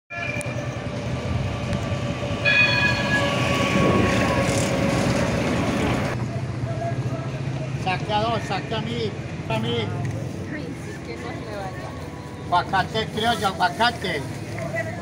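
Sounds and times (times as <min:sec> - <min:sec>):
tram warning horn: 0:00.1 - 0:05.9
tram passing with whine and rush: 0:00.1 - 0:13.2.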